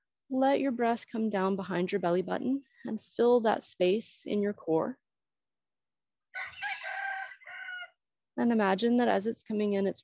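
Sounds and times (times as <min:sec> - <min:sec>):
rooster crowing: 0:06.3 - 0:08.0.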